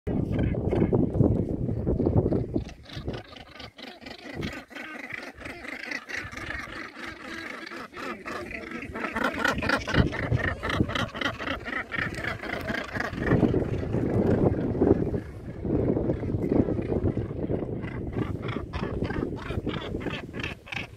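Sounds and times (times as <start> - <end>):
gannets calling harshly: 2.4 - 20.9.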